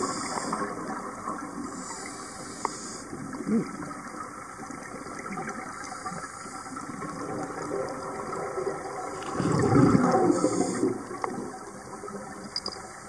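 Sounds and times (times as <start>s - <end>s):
watery hiss of scuba regulator: 0.0s - 0.9s, 1.6s - 3.2s, 5.7s - 7.0s, 9.1s - 11.1s
exhaled bubbles rushing: 6.8s - 12.4s.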